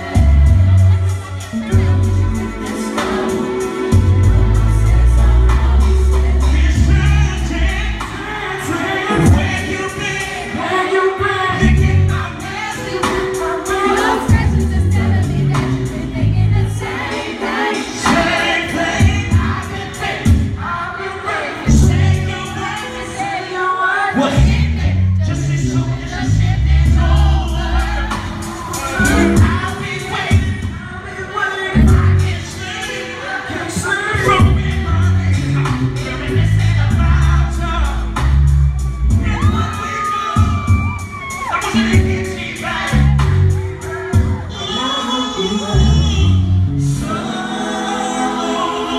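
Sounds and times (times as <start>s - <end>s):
live band playing: 0.0s - 48.5s
several voices singing: 0.0s - 48.9s
crowd cheering: 27.1s - 30.4s, 37.6s - 48.9s
high-pitched scream: 38.8s - 41.8s.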